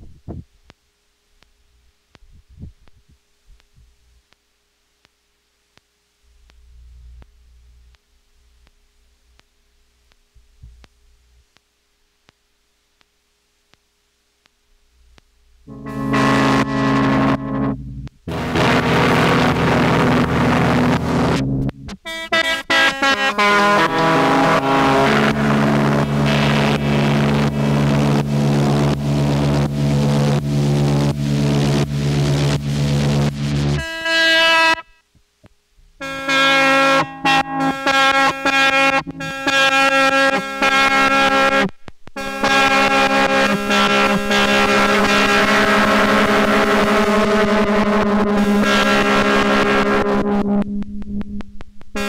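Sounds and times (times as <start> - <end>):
pulsing synthesized steel guitar drone: 15.7 - 35.0, 36.0 - 52.0.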